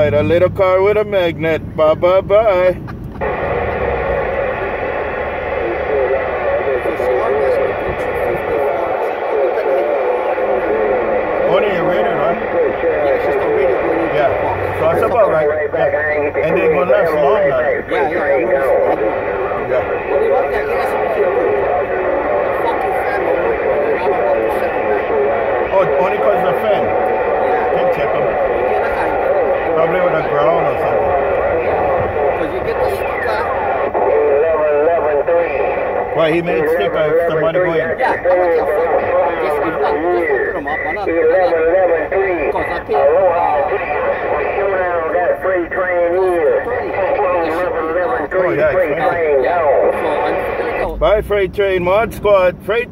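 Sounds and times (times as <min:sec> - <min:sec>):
radio static: 0:00.0 - 0:52.8
faint radio voices: 0:00.0 - 0:52.9.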